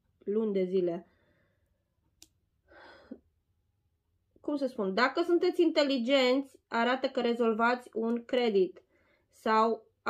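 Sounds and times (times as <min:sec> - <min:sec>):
person breathing in: 0:02.7 - 0:03.2.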